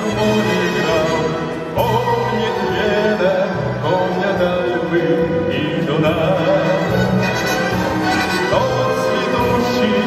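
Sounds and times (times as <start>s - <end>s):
orchestral waltz music: 0.0s - 10.0s.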